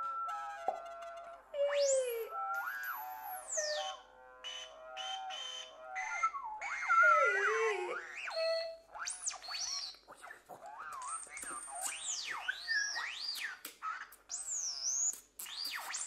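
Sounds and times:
electronic music with gliding tones: 0.0 - 13.5.

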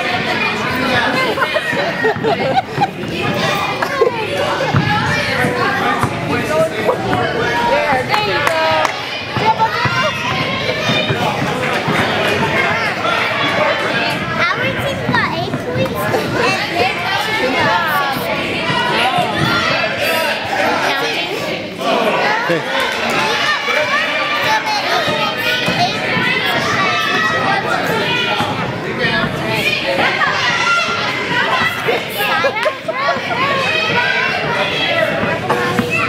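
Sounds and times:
children and adults chattering: 0.0 - 36.0.

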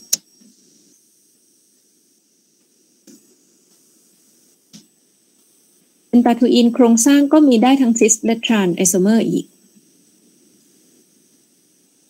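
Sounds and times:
faint microphone background noise: 3.0 - 11.5.

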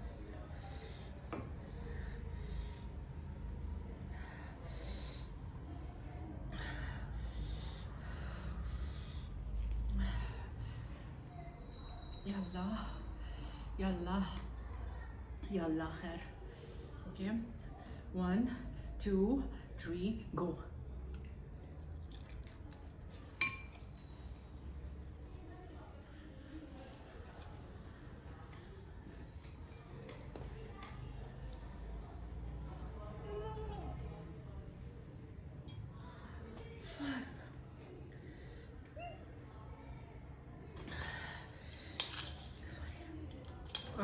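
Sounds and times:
fork clinking on tableware: 23.4 - 23.9.

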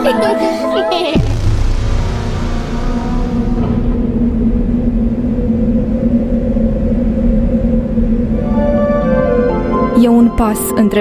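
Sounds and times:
low musical drone: 0.0 - 11.0.

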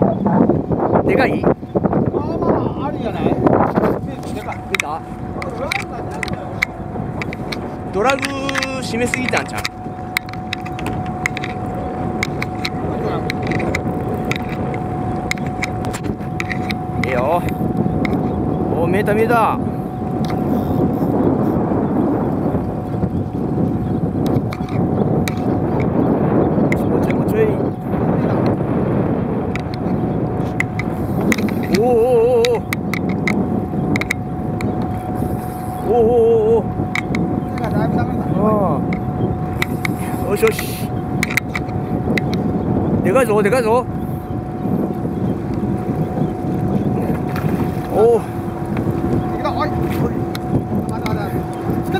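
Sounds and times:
boat engine running: 0.0 - 51.9
high whine: 0.0 - 51.9
thin steady tone: 1.4 - 51.9
sharp clicks: 12.2 - 16.8.

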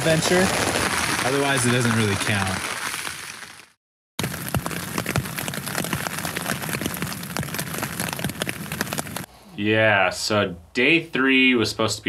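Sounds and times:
rain on tent fabric: 0.0 - 9.3.

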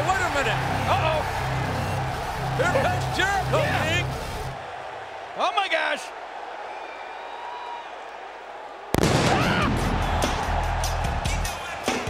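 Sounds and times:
arena crowd noise: 0.0 - 12.0
pyrotechnics bang: 9.0 - 10.0.

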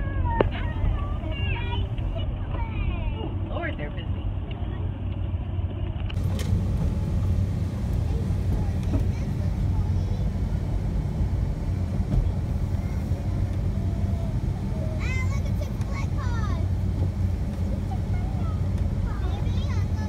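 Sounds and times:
child's voice: 0.0 - 3.4, 8.0 - 10.6, 12.2 - 16.8, 17.8 - 20.0
van engine and road noise: 0.0 - 20.0.

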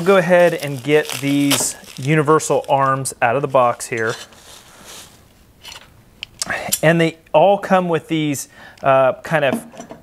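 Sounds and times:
soft packaging rustle: 0.0 - 5.9.

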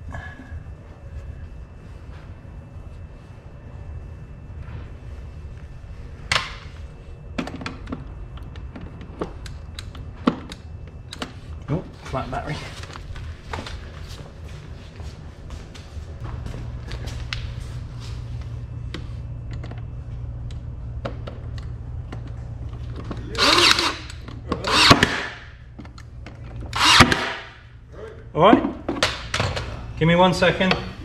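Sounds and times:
cordless drill motor hum: 23.3 - 25.2, 26.7 - 27.4
loud sharp bursts: 26.7 - 27.6.

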